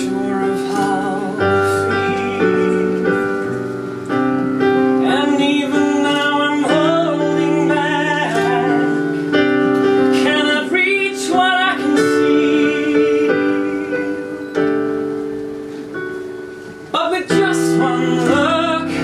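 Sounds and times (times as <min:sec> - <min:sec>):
person singing with vibrato: 0:00.0 - 0:04.0, 0:04.6 - 0:15.9, 0:16.8 - 0:19.0
piano chords: 0:00.0 - 0:19.0.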